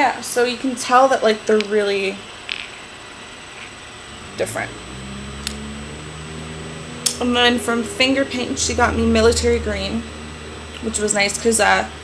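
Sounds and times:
low steady hum: 3.5 - 12.0.

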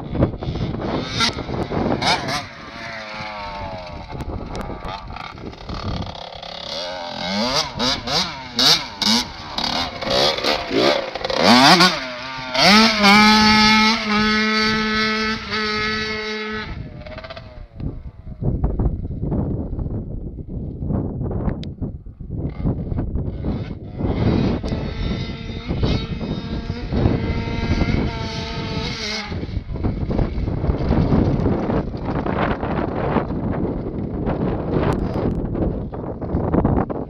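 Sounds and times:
two-stroke motocross bike engine: 0.0 - 37.0
wind buffeting microphone: 0.0 - 37.0.

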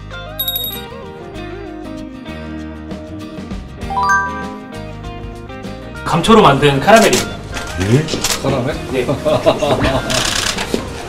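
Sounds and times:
men laughing: 9.0 - 10.3.

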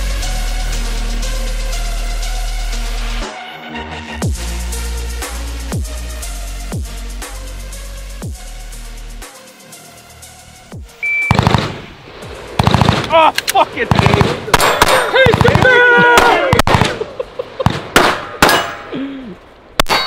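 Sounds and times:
handgun shots: 14.0 - 17.0, 17.7 - 18.9
bullets clanging on steel targets: 14.6 - 15.3, 18.0 - 19.0, 19.8 - 20.0.

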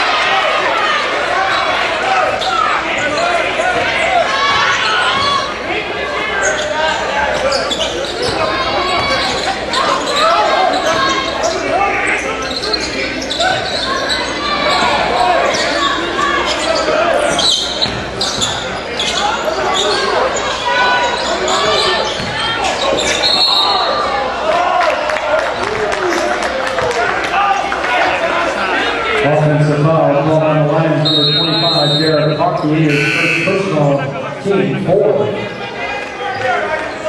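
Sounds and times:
crowd and players voices: 0.0 - 37.0
basketball bouncing on court: 17.8 - 18.6, 21.6 - 22.4.

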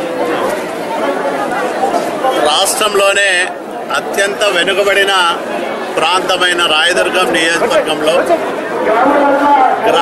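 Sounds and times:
crowd chatter: 0.0 - 10.0
man talking: 6.0 - 10.0.

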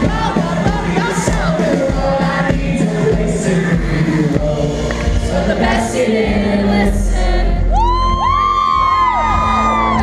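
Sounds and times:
man singing: 0.0 - 6.1
live band playing: 0.0 - 7.2
fans screaming high-pitched whoops: 7.7 - 10.0.

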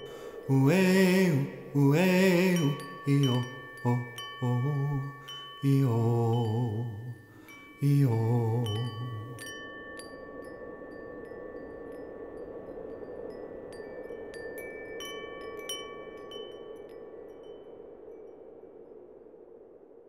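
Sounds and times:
wind chimes ringing: 0.0 - 18.3
faint steady noise: 0.0 - 20.0.

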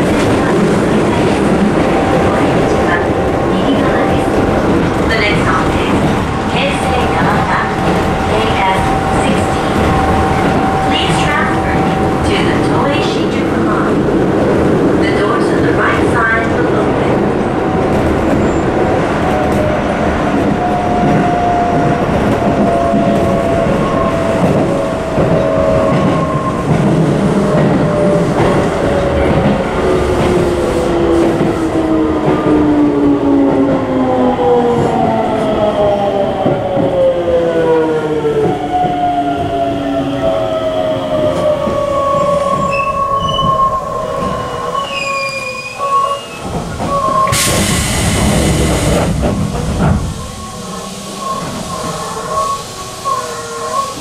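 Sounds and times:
train running noise: 0.0 - 54.0
loud hiss: 47.3 - 49.2.

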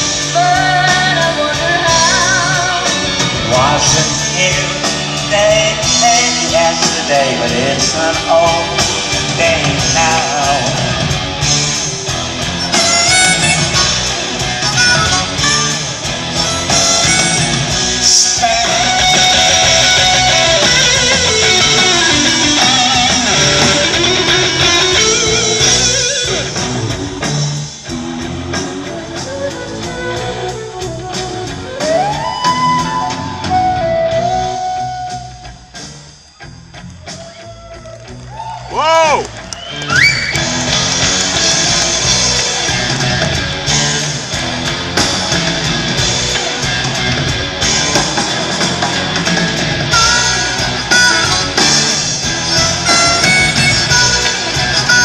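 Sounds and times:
bass guitar: 0.0 - 55.0
drum kit: 0.0 - 55.0
electric guitar: 0.0 - 55.0
flute: 12.1 - 20.7, 28.8 - 36.5, 37.1 - 40.5, 49.9 - 55.0.

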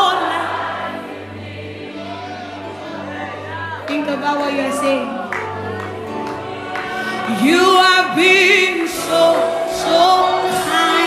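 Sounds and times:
soft gospel worship music: 0.0 - 11.0.

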